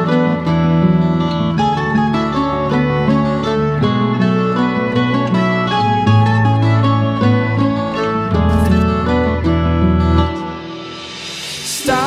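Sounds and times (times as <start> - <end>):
acoustic guitar plucked notes: 0.0 - 11.1.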